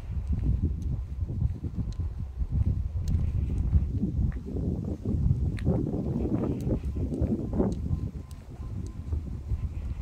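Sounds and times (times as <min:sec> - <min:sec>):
footsteps on concrete: 0:00.0 - 0:10.0
wind buffeting microphone: 0:00.0 - 0:10.0.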